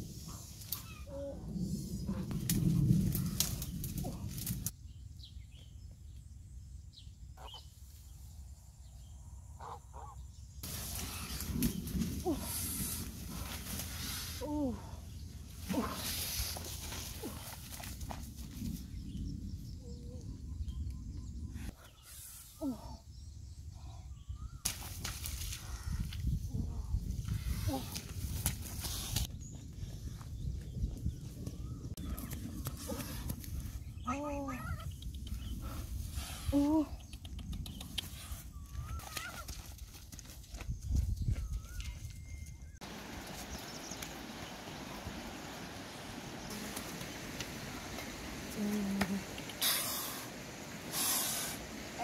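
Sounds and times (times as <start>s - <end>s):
wind on microphone: 0.0s - 4.8s, 10.6s - 39.5s, 40.4s - 52.0s
trampling through tall grass: 42.8s - 52.0s.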